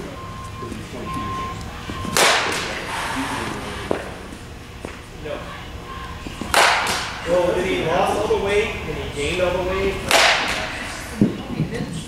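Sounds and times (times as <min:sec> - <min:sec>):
bat hitting ball: 0:02.1 - 0:03.0, 0:06.2 - 0:07.3, 0:10.0 - 0:11.4.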